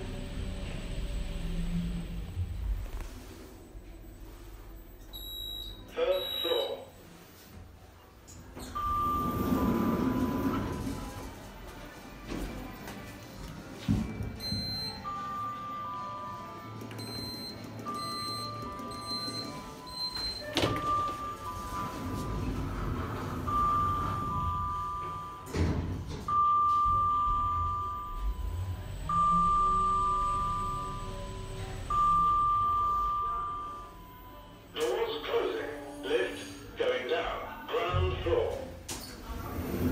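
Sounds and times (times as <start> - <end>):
short high beeps: 5.2 - 6.8.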